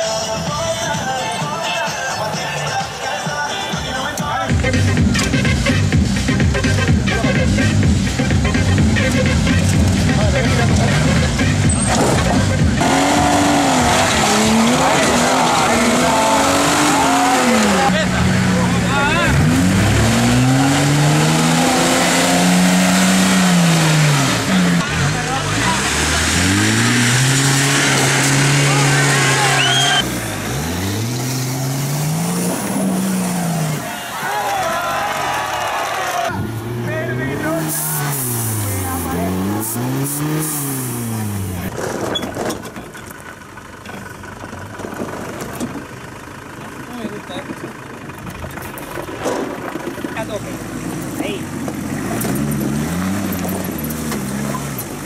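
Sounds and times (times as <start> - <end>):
off-road engines revving: 2.0 - 55.0.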